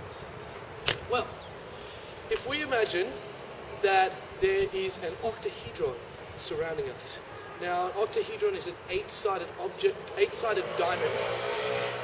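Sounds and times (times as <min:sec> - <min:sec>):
outdoor background hiss: 0:00.0 - 0:12.0
man speaking: 0:02.3 - 0:11.2.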